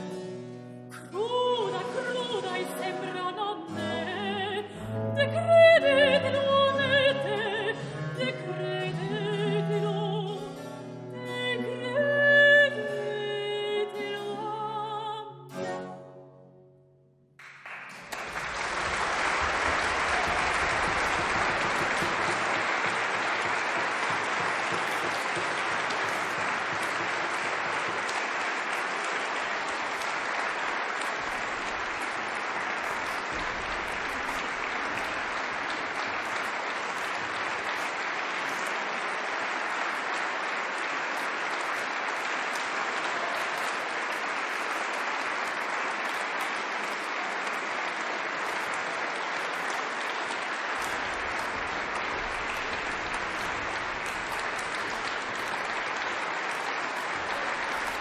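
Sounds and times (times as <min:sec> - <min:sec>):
audience applauding: 0:17.4 - 0:58.0.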